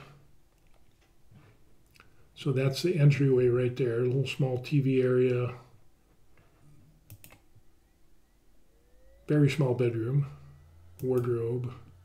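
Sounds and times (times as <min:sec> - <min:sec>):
computer mouse clicks: 0:07.0 - 0:07.5.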